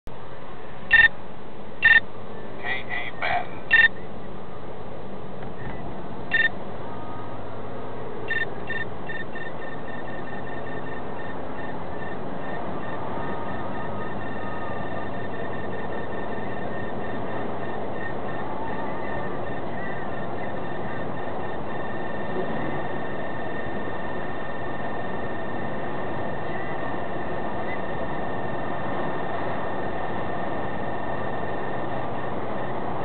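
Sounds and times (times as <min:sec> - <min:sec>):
car road and engine noise: 0:00.0 - 0:33.0
radar detector beeping: 0:00.9 - 0:01.1, 0:01.8 - 0:02.0, 0:03.2 - 0:04.0, 0:06.3 - 0:06.6, 0:08.3 - 0:23.8.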